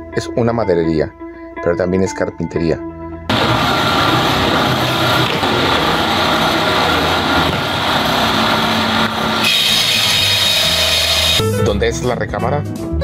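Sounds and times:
woodworking machinery whirring: 3.3 - 11.4
thin high ringing tone: 6.0 - 11.4.

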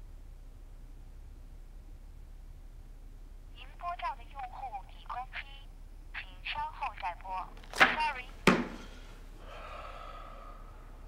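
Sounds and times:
recorded voice through phone earpiece: 3.6 - 8.3.

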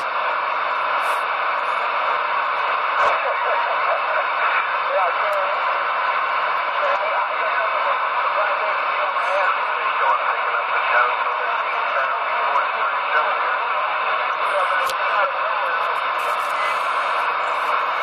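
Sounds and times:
garbled radio voice: 0.0 - 18.0
radio static hiss: 0.0 - 18.0.

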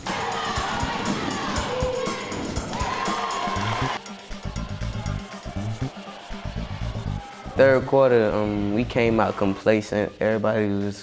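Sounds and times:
background music with a beat: 0.0 - 11.0
low bass pulses: 0.7 - 9.2.

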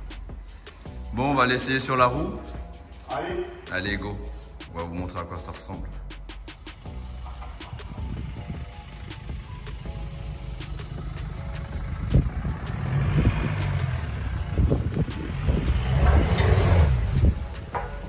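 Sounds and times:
car engine low rumble: 6.5 - 18.0.

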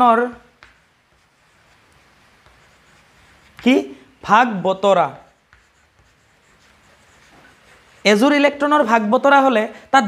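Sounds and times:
chalk scratching on chalkboard: 0.0 - 9.6
person speaking: 0.0 - 10.0.

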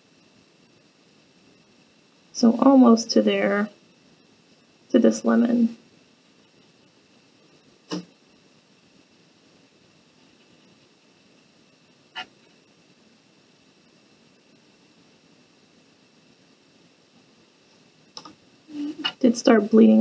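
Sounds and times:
room hiss: 0.0 - 20.0.

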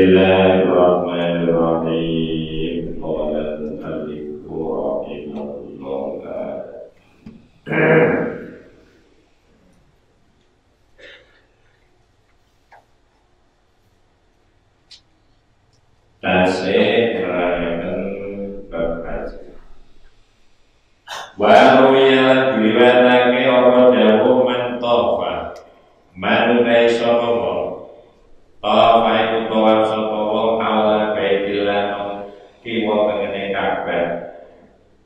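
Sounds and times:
man chanting: 0.0 - 6.9, 7.7 - 8.7, 16.2 - 19.7, 21.3 - 25.6, 26.2 - 27.9, 28.6 - 34.3
man reading aloud: 0.0 - 7.0, 7.7 - 8.8, 16.2 - 19.7, 21.3 - 28.0, 28.6 - 34.5.

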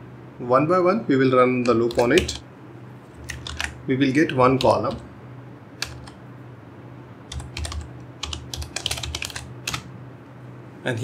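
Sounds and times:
low steady hum: 0.0 - 11.0
computer keyboard typing: 1.6 - 2.4, 3.2 - 3.8, 4.4 - 5.0, 5.8 - 6.2, 7.3 - 9.9.

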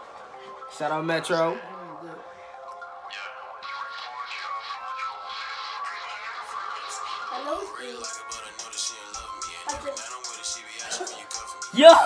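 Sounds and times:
thin rap music: 0.6 - 12.0.

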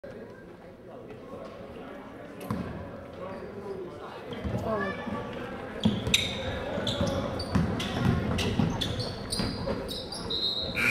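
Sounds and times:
voices of players and spectators: 0.0 - 10.9
basketball bouncing on wooden floor: 7.5 - 8.7.

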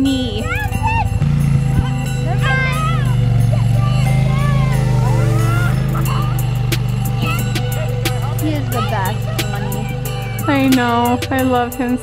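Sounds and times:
atv engine running: 0.0 - 12.0
music with ticking beat: 0.0 - 12.0
children shouting: 0.3 - 10.8.

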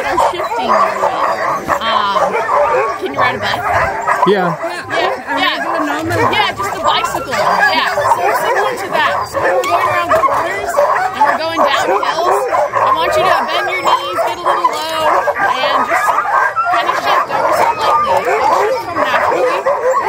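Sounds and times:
dogs yipping and barking: 0.0 - 20.0.

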